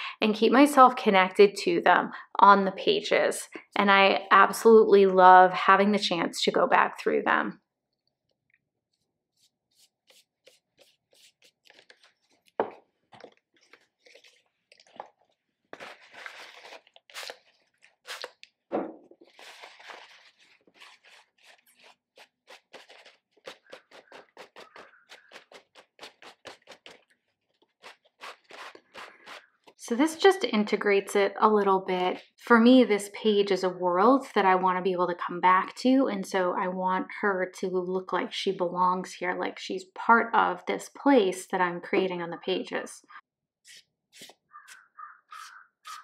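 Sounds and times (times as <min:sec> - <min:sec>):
paper rustling and scratching: 0:09.3 - 0:18.4, 0:19.1 - 0:29.8, 0:43.7 - 0:46.0.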